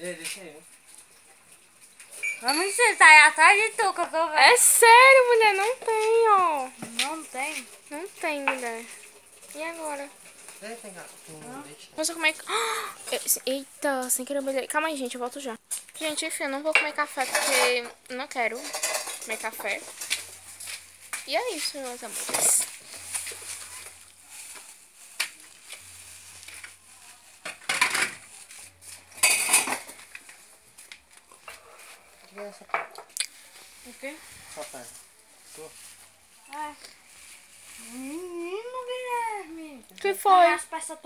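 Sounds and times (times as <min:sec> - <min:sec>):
people talking: 0:02.4 - 0:08.9, 0:11.4 - 0:19.8, 0:21.3 - 0:22.6, 0:37.8 - 0:41.0
kitchenware clattering: 0:16.6 - 0:20.4, 0:22.0 - 0:22.8, 0:27.4 - 0:28.3, 0:29.0 - 0:30.2.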